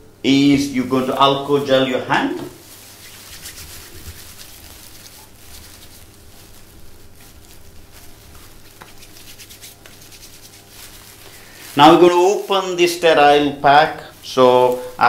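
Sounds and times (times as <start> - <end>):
hands rubbing together: 2.5 - 13.1.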